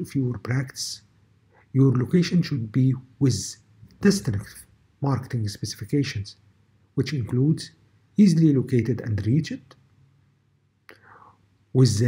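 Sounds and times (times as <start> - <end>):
man speaking: 0.0 - 9.8, 11.0 - 12.0
breathy inhale: 10.9 - 11.4.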